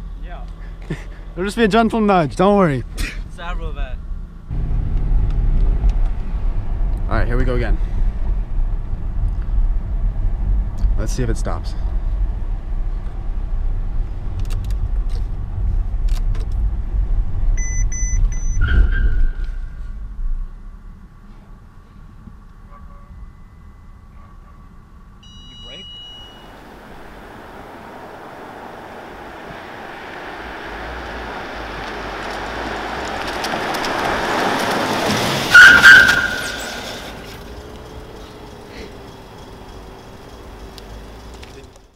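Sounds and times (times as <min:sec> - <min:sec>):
low road rumble inside car: 0:00.0 - 0:41.9
rush of tyre and road noise: 0:00.0 - 0:41.9
quick warning beeps: 0:17.6 - 0:18.6, 0:25.2 - 0:26.6.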